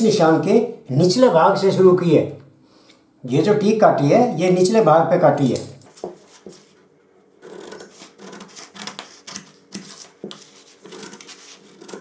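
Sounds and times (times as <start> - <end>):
shears snipping cloth: 7.5 - 12.0.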